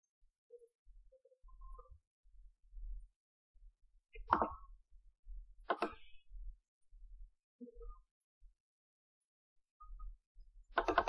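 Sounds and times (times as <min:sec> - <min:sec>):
computer mouse clicks: 0:05.6 - 0:06.1, 0:10.7 - 0:11.0.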